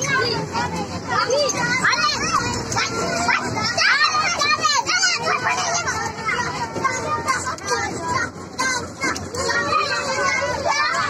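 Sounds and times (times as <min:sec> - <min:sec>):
young children shouting and squealing: 0:00.0 - 0:11.0.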